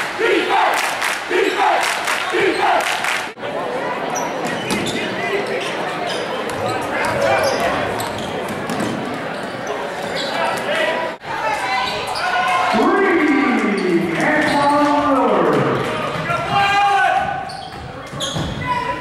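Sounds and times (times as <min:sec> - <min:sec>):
crowd voices and shouting: 0:00.0 - 0:19.0.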